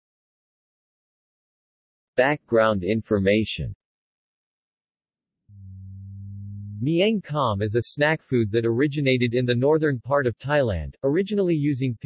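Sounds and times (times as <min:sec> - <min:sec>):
synthesized voice speaking: 0:02.2 - 0:03.8, 0:05.6 - 0:12.0
synthesized male voice humming: 0:05.5 - 0:09.4.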